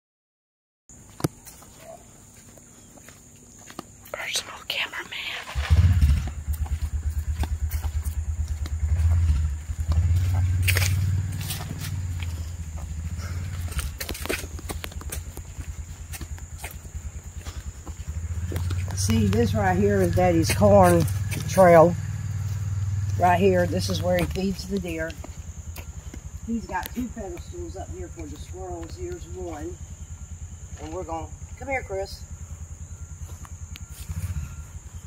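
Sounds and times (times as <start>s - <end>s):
footsteps crunching through dry leaves: 1.0s - 4.2s, 5.6s - 27.1s
steady low rumble: 3.9s - 35.0s.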